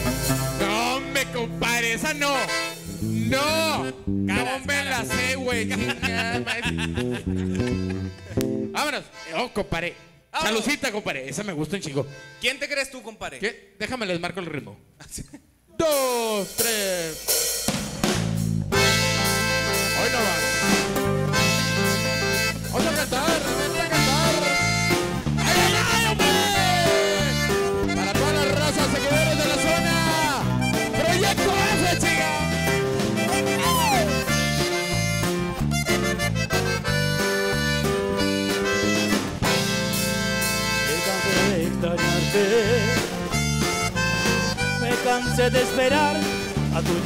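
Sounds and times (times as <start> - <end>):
drums: 0.0 - 7.9, 15.8 - 47.0
electric bass: 0.0 - 8.8, 17.7 - 47.0
sliding lead melody: 0.0 - 10.3, 17.1 - 47.0
twelve-string acoustic guitar: 18.7 - 47.0.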